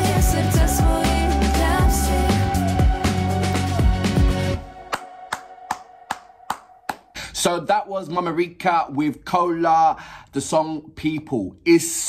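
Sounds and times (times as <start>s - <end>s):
person clapping slowly: 4.9s - 7.1s.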